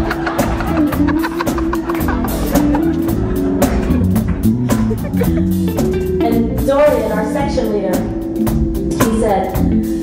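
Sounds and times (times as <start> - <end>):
drum kit hits: 0.0 - 9.3.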